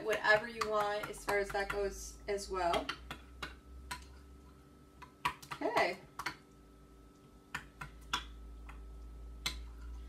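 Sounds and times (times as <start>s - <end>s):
metal spoon stirring yogurt: 0.0s - 6.5s, 7.3s - 10.0s.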